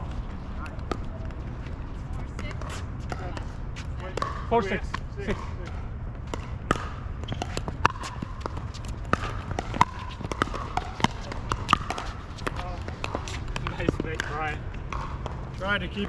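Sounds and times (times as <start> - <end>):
paddles hitting pickleball: 2.4 - 16.0.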